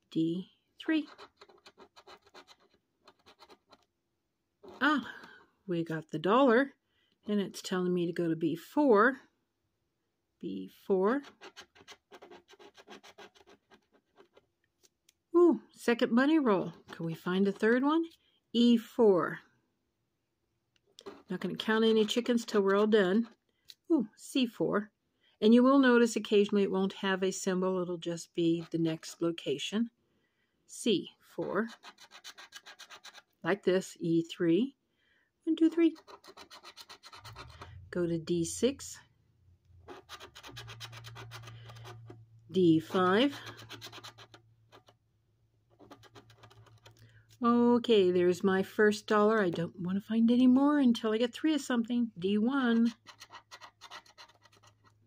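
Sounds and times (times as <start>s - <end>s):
scraping lottery ticket coating: 1.0s - 3.8s, 11.2s - 14.4s, 21.0s - 23.4s, 31.6s - 33.4s, 35.8s - 37.8s, 39.8s - 45.0s, 45.7s - 47.1s, 52.7s - 55.0s.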